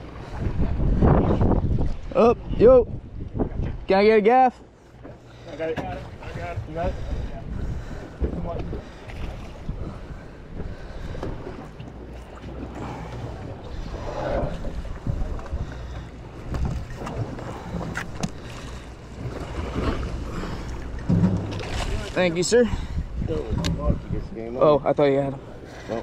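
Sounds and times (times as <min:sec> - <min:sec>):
wind on microphone: 0:00.0 - 0:03.9, 0:06.1 - 0:11.6, 0:12.8 - 0:18.6, 0:19.4 - 0:24.4
boat machinery drone: 0:04.4 - 0:26.0.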